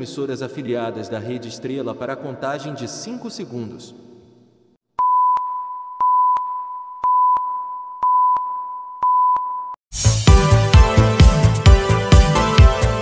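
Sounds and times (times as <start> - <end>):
high beep tone pulses: 5.0 - 9.8.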